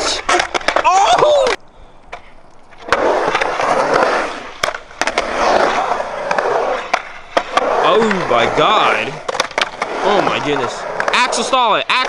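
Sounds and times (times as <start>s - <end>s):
skateboard wheels rolling on concrete: 0.0s - 12.0s
skateboard sharp clack: 9.2s - 12.0s.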